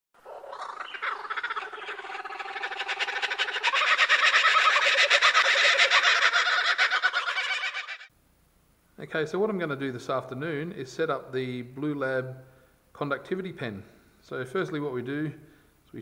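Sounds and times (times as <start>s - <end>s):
flock of birds squawking: 0.2s - 8.1s.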